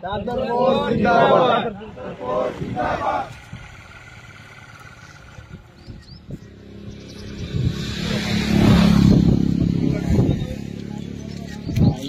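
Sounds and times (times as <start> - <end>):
voices: 0.0 - 12.0
motor vehicle engine: 0.2 - 12.0.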